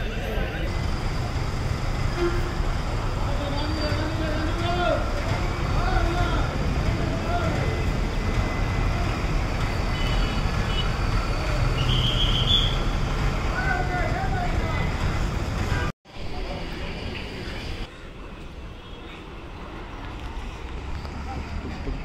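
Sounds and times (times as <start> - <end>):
diesel bus engines idling: 0.6 - 15.8
people talking: 3.2 - 9.6, 13.5 - 15.1.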